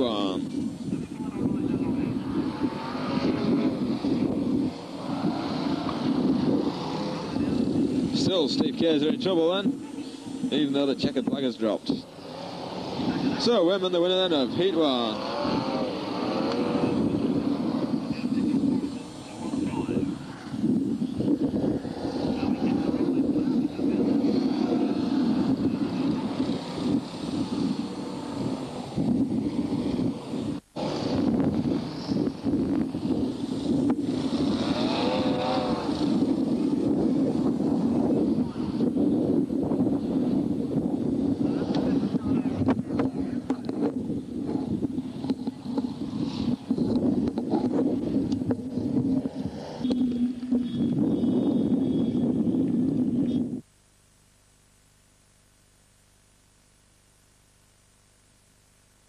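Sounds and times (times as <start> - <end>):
stock car engines droning: 0.0 - 53.5.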